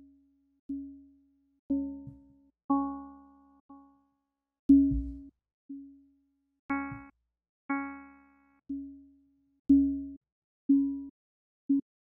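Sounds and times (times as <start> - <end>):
low thump: 4.9 - 5.3.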